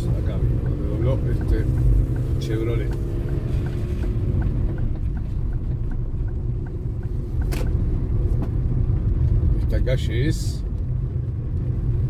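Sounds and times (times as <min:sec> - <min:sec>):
car engine rumble: 0:00.0 - 0:12.0
faint steady ticking: 0:00.0 - 0:12.0
tyres on wet streets: 0:00.0 - 0:12.0.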